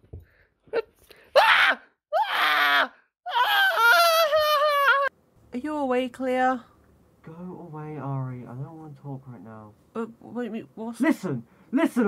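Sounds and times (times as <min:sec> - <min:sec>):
person wailing: 0:01.4 - 0:05.1.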